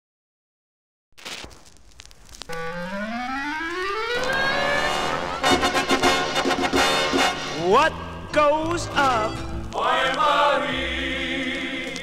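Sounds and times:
clarinet glissando: 2.5s - 7.4s
brass chords: 2.5s - 9.4s
record clicks: 3.5s - 6.8s, 11.3s - 12.0s
big band jazz: 4.2s - 8.0s.

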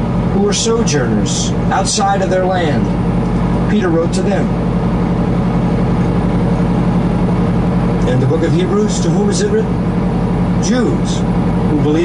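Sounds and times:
truck diesel engine droning: 0.0s - 12.0s.

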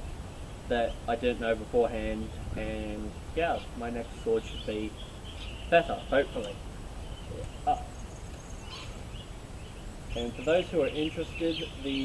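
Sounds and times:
low outdoor background: 0.0s - 12.0s
faint bird chirps: 3.4s - 12.0s.

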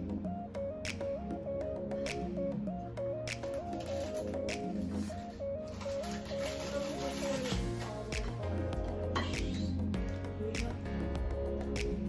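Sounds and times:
repeating melody over bass line: 0.0s - 6.4s, 7.6s - 12.0s.

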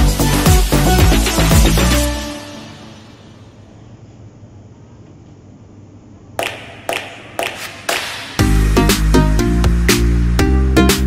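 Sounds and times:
background music: 0.0s - 3.5s, 7.0s - 11.0s
sharp percussive hits: 6.4s - 8.8s.

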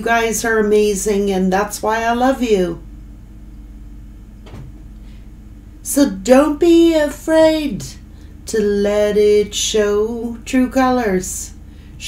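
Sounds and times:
woman speaking: 0.0s - 2.8s, 5.8s - 11.6s
low room hum: 0.0s - 12.0s
faint soft knock: 4.4s - 4.8s.

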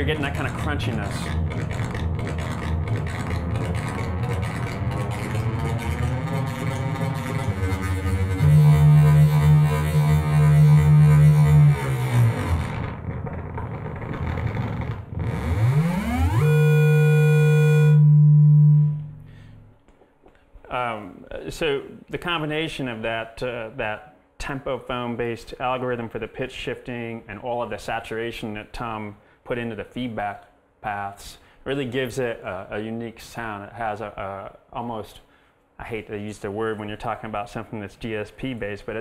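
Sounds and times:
distorted synthesizer drone: 0.0s - 19.7s
loud steady synth tone: 5.2s - 12.8s, 15.2s - 19.7s.

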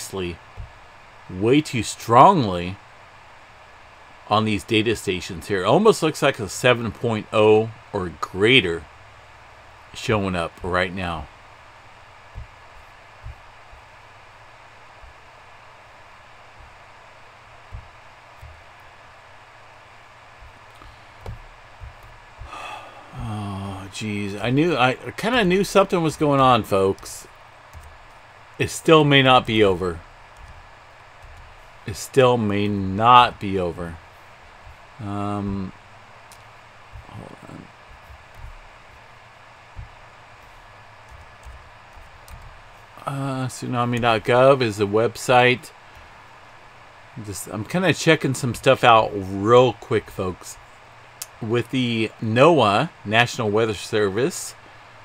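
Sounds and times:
microphone hiss: 0.0s - 55.0s
soft low thumps: 0.4s - 1.3s, 10.5s - 43.1s
breath-like rush: 22.4s - 23.9s.

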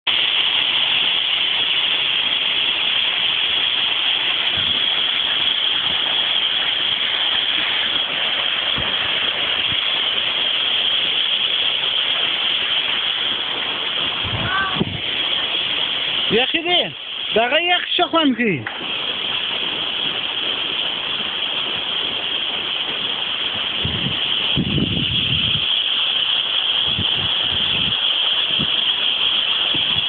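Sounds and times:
waterfall rushing: 0.1s - 30.0s.

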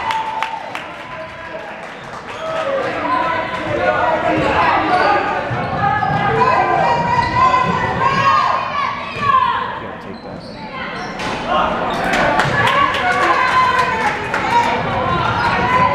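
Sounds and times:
sneakers squeaking: 3.6s - 12.9s.

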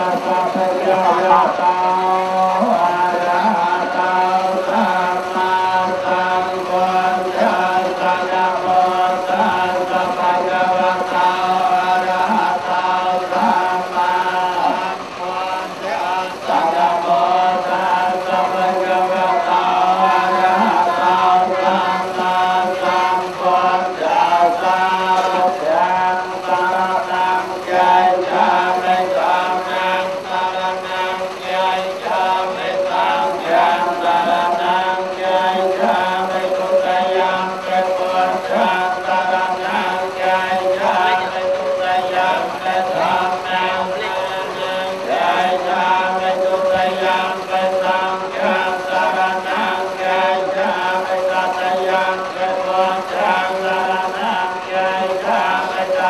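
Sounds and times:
monks chanting: 0.0s - 56.0s.

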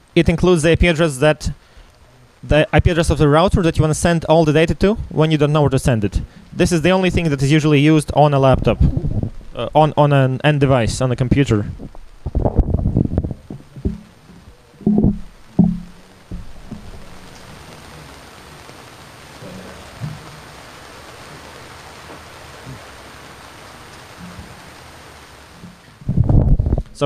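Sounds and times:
faint background hiss: 0.0s - 27.0s
low thumps and rumbles: 8.4s - 10.0s, 11.2s - 17.7s, 25.6s - 27.0s.

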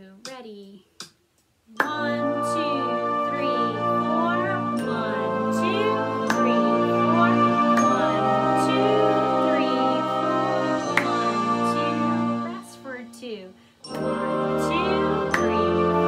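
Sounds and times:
person counting: 0.0s - 7.4s
hand claps: 1.8s - 2.2s, 6.2s - 6.7s, 10.9s - 11.4s, 15.3s - 15.9s
slow band chorale: 1.8s - 12.6s, 13.9s - 16.0s.

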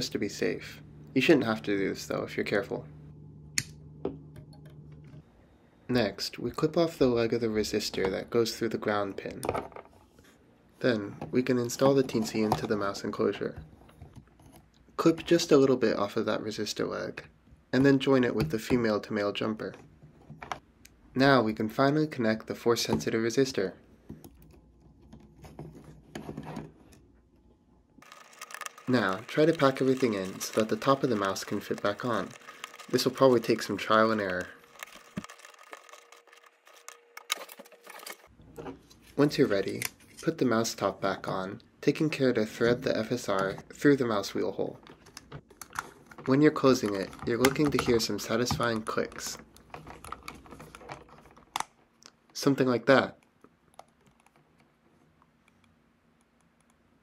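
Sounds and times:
small plastic clicks: 28.0s - 38.2s
fingers scratching on wires: 28.0s - 38.3s.

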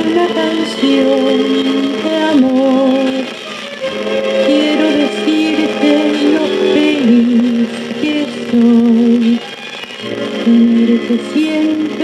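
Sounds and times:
pop ballad on record player: 0.0s - 12.0s.

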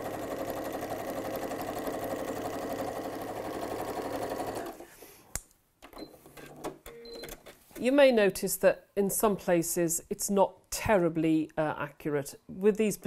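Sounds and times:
sewing machine running: 0.0s - 4.8s.

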